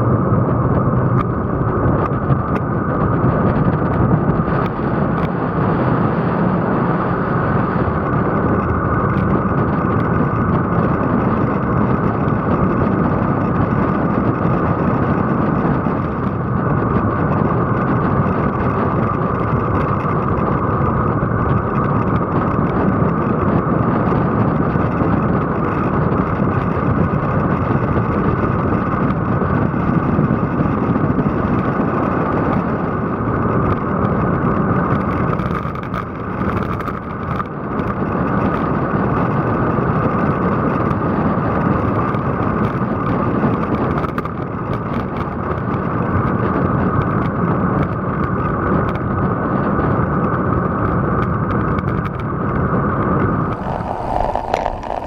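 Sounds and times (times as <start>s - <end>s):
road noise: 0.0s - 46.3s, 50.6s - 55.0s
wind rushing on microphone: 0.0s - 55.0s.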